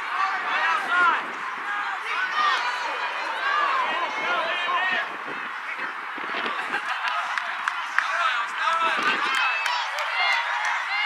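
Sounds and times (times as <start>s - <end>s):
distant voices shouting: 0.0s - 11.0s
outdoor background noise: 0.0s - 11.0s.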